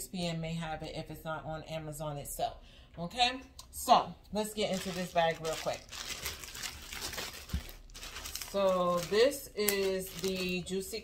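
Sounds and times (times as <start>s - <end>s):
plastic bag crinkling: 4.5s - 11.0s
scissors cutting plastic: 6.2s - 10.6s.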